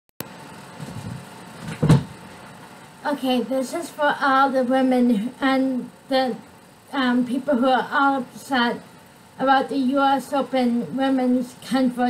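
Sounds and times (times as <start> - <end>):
microphone hiss: 0.2 - 12.0.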